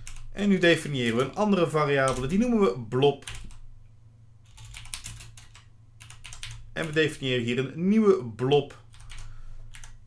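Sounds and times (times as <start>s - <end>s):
computer keyboard typing: 0.0s - 0.3s, 1.0s - 1.4s, 2.0s - 2.5s, 3.2s - 3.6s, 4.4s - 7.2s, 8.9s - 10.0s.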